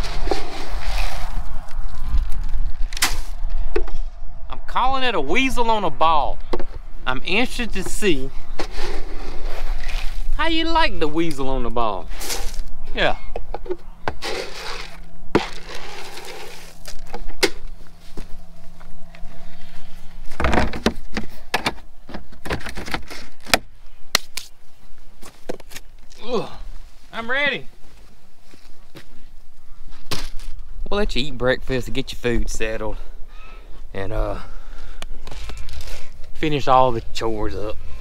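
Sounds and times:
plastic scoop scraping through feed: 0.0s - 1.5s, 8.6s - 10.3s, 14.2s - 16.9s.

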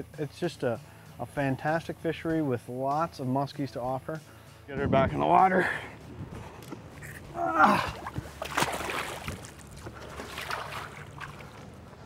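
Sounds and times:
water splashing at boat side: 7.6s - 12.0s.

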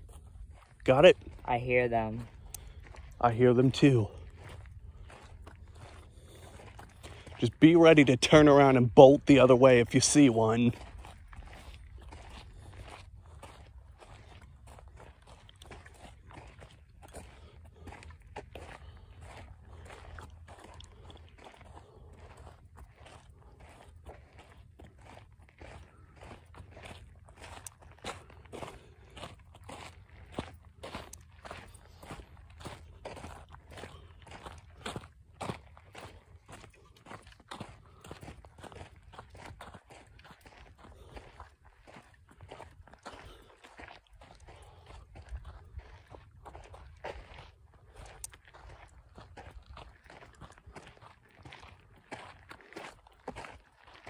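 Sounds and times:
footsteps crunching on gravel: 0.0s - 54.0s.

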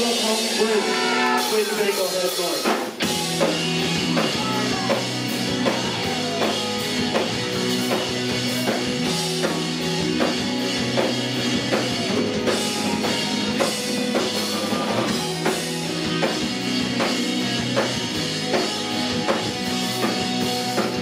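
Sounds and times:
distorted electric guitars: 0.0s - 21.0s
drum kit steady beat: 0.0s - 21.0s.

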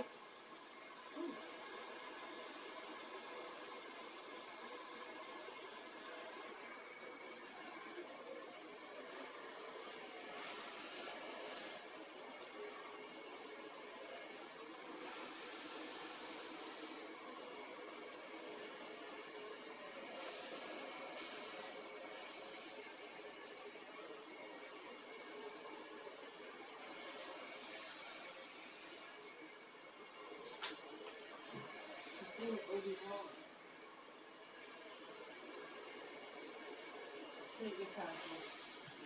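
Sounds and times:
hair dryer running: 0.0s - 39.0s.

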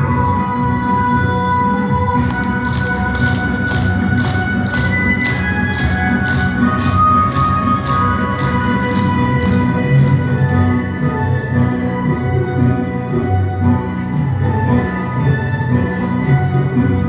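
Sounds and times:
music with steady tones: 0.0s - 17.0s
group clapping in time: 2.2s - 10.1s.

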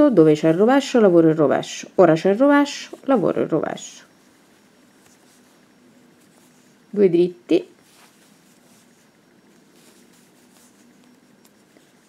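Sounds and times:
low room hum: 0.0s - 12.0s
yarn rustling: 2.3s - 12.0s.

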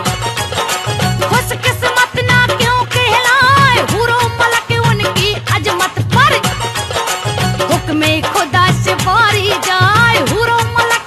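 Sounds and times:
instrumental accompaniment: 0.0s - 11.0s
steady drum beat: 0.0s - 11.0s
woman singing with vibrato: 1.2s - 11.0s.

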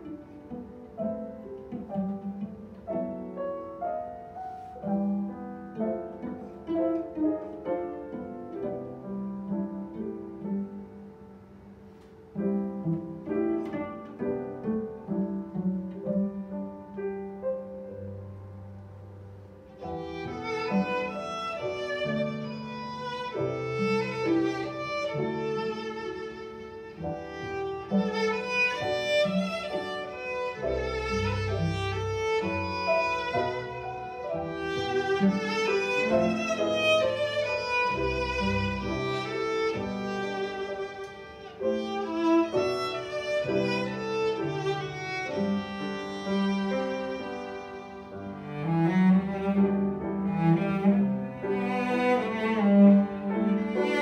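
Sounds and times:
cello: 0.0s - 54.0s
grand piano: 0.0s - 54.0s
violin melody: 0.0s - 54.0s.

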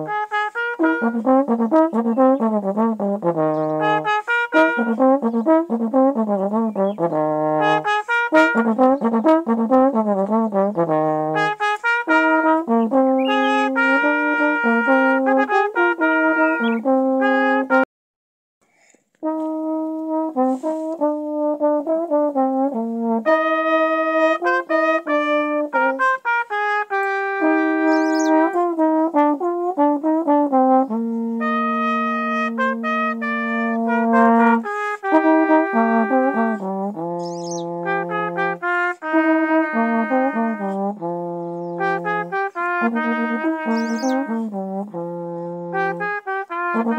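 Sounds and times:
trombones playing: 0.0s - 17.9s, 19.2s - 46.9s.

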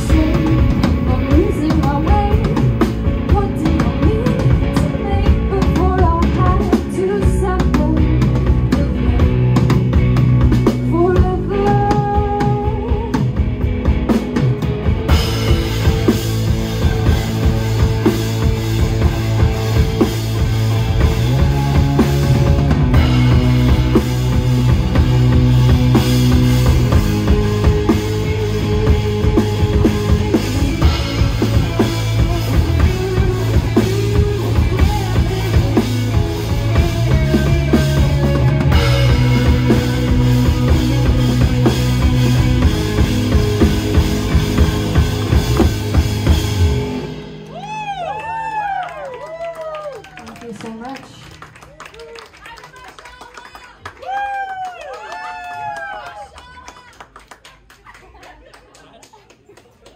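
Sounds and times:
drum kit beat: 0.0s - 48.7s
bass guitar: 0.0s - 52.3s
electric guitars: 0.0s - 52.3s.

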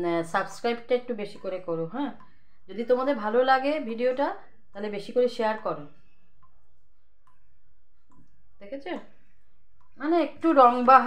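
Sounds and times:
woman's voice: 0.0s - 5.9s, 10.0s - 11.0s.

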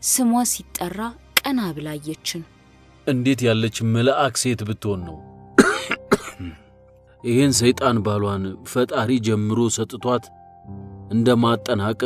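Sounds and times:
soft background music: 0.0s - 12.0s
person coughing: 5.6s - 6.6s.

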